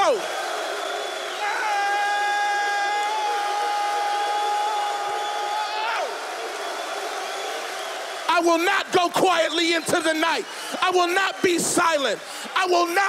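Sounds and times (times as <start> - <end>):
crowd of men cheering: 0.0 - 13.0
man shouting into a microphone: 1.4 - 6.1, 8.3 - 13.0.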